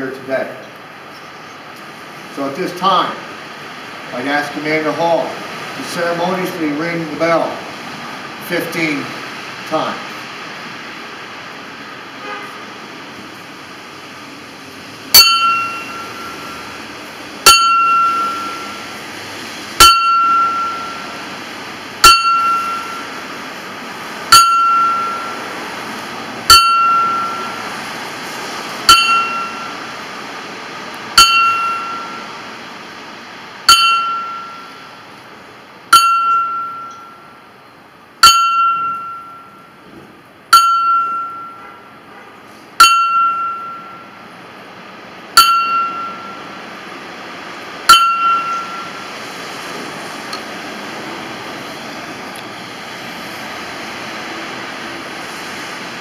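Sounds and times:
small bell tolling: 15.1 - 16.6, 17.5 - 18.9, 19.8 - 21.2, 22.0 - 23.2, 24.3 - 25.5, 26.5 - 27.7, 28.9 - 29.8, 31.2 - 32.3, 33.7 - 34.9, 35.9 - 37.4, 38.2 - 39.8, 40.5 - 41.8, 42.8 - 44.2, 45.4 - 46.5, 47.9 - 49.1.

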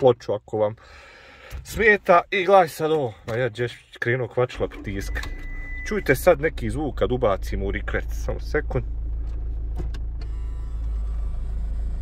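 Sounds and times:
diesel engine idling: 4.6 - 12.0.

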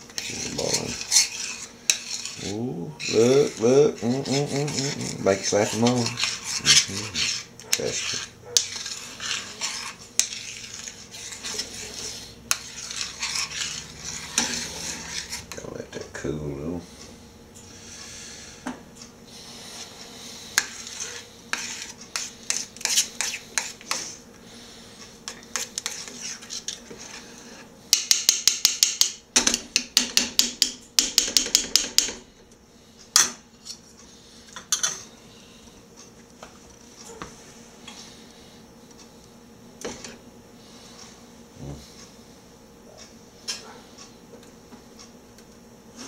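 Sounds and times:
metal utensil scraping skillet: 0.0 - 15.7, 20.5 - 24.2, 25.3 - 28.8.

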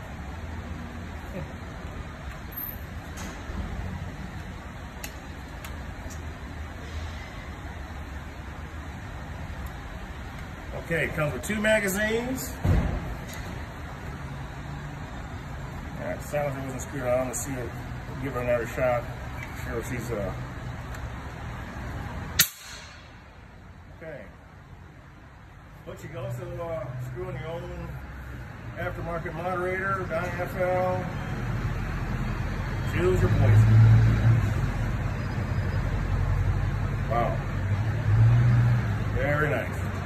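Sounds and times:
low rumble of parking garage: 0.0 - 40.0.

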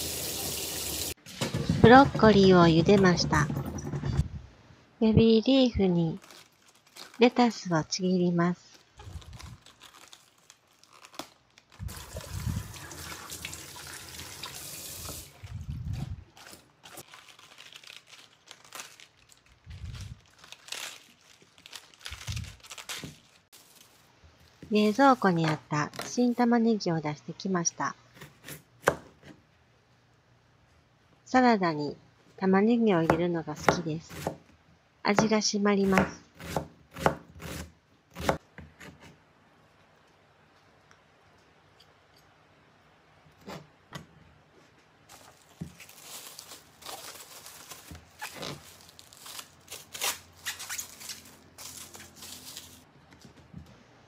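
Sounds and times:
kitchen tap running: 0.0 - 1.2, 11.9 - 15.6
lettuce leaves tearing: 9.0 - 12.8, 15.5 - 24.0, 45.2 - 52.8
knife cutting onion on plastic board: 28.1 - 29.4, 33.0 - 34.4, 35.1 - 39.2.

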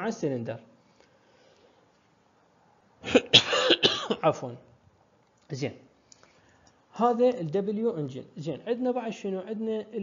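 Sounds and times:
man coughing: 3.0 - 4.3.

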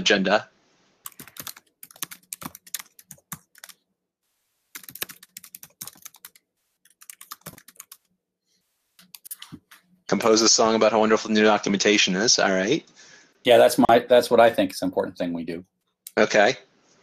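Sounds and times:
computer keyboard typing: 1.0 - 3.8, 4.7 - 8.1, 9.0 - 9.9.

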